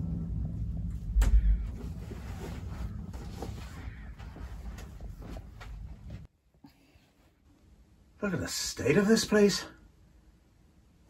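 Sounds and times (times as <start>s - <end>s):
low heavy thump: 0.7s - 2.0s.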